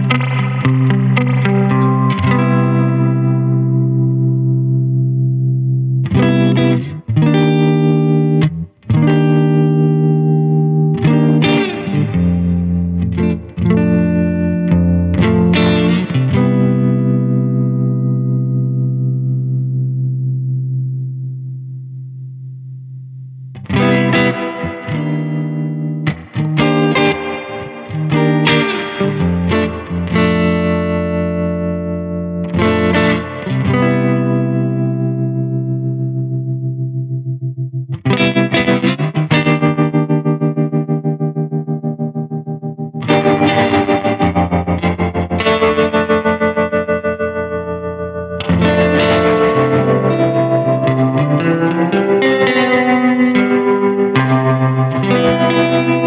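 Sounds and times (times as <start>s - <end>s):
electric guitar chords ringing: 0.0s - 56.0s.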